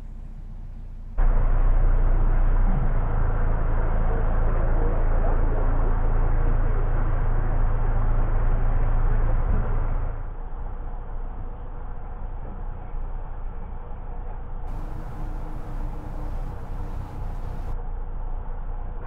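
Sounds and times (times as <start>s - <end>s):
boat diesel engine rumbling: 0.0s - 4.8s, 14.7s - 17.8s.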